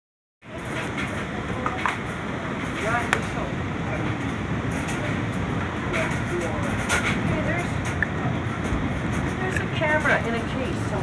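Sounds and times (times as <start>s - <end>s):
gusty wind on microphone: 0.6s - 11.0s.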